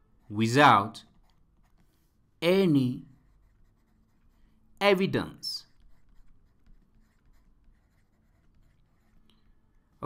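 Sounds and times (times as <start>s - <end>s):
stylus scratching and tapping on tablet: 1.0s - 4.6s, 5.5s - 10.0s.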